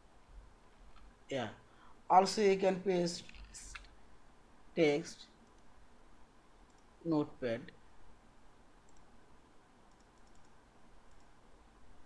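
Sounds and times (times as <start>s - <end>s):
faint computer mouse clicks: 6.6s - 6.9s, 8.8s - 9.1s, 9.8s - 11.4s.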